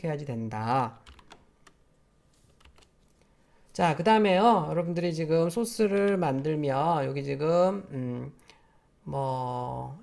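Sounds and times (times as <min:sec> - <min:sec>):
faint keyboard clicks: 0:01.0 - 0:01.8, 0:02.5 - 0:03.2.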